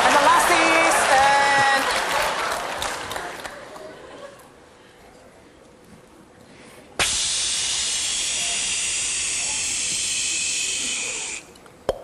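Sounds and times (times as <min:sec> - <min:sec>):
steam hiss: 0:07.0 - 0:11.5.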